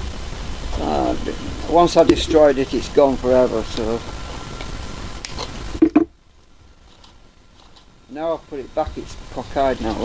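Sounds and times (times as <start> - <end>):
steady low rumble: 0.0 - 9.5.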